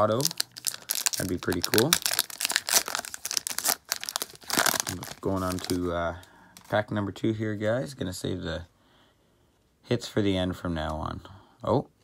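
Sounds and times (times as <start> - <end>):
foil pack tearing and crinkling: 0.0 - 5.8.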